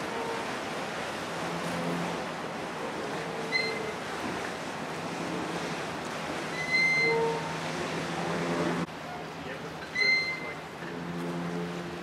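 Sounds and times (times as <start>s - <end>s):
river water splashing: 0.0s - 12.0s
low engine hum: 10.4s - 12.0s.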